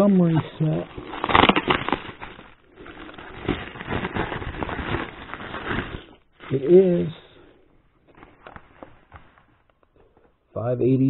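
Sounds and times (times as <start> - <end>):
bubble wrap crinkling: 0.0 - 7.2, 7.8 - 10.2.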